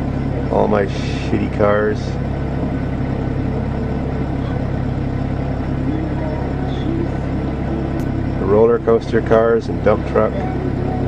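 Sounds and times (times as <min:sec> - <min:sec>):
van engine and road rumble: 0:00.0 - 0:11.0.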